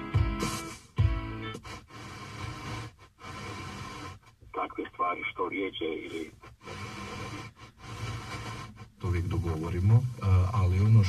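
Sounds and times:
radio static hiss: 0.4 - 11.0
thin radio speech: 4.5 - 6.4.

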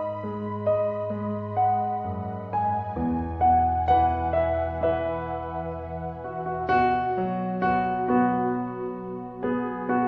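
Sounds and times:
slow soft piano music: 0.0 - 10.0.

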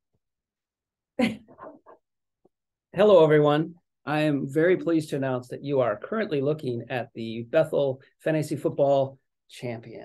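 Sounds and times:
person laughing: 1.2 - 2.0.

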